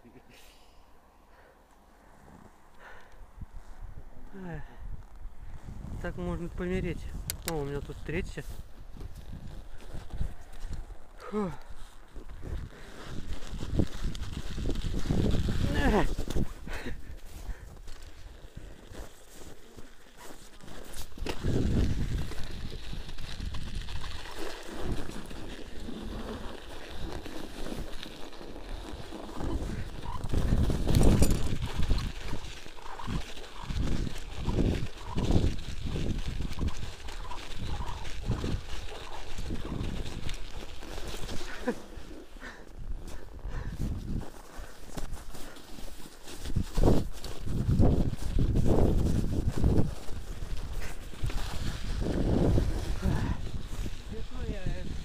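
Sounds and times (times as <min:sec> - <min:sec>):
wind rumbling on microphone: 0:02.2 - 0:19.0, 0:20.4 - 0:55.0
tyres crunching through snow: 0:05.6 - 0:55.0
bike jolting over bumps: 0:20.7 - 0:42.5.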